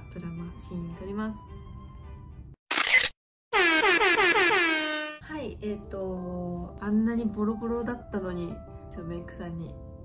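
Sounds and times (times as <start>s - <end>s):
buzzy horn honk: 3.5s - 5.2s.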